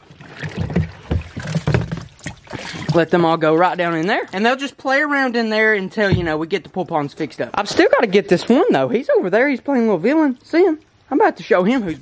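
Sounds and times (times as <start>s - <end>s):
water splashing in plastic tub: 0.0s - 12.0s.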